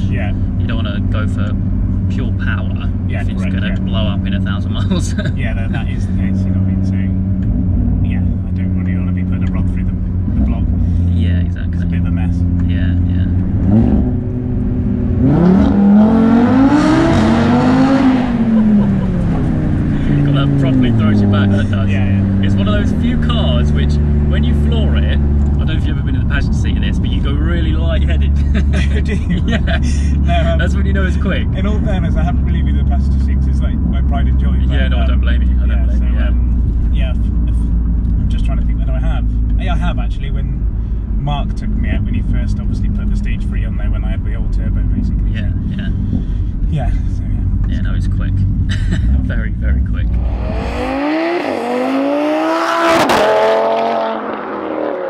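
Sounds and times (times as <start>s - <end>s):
car engine heard from cabin: 0.0s - 53.8s.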